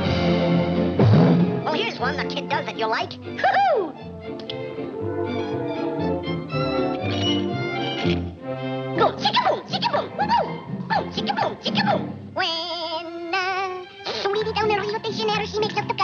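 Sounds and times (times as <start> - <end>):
orchestral cartoon music: 0.0 - 16.0.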